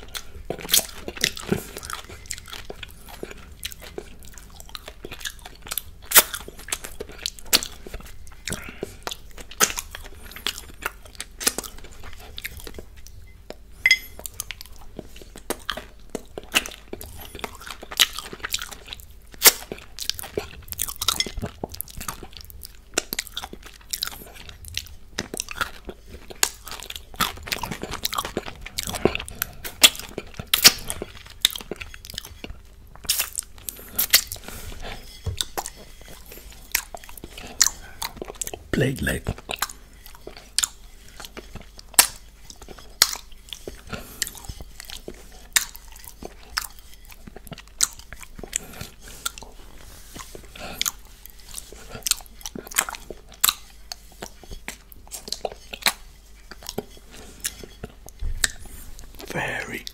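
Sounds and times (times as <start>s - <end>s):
mouth chewing: 0.0s - 59.9s.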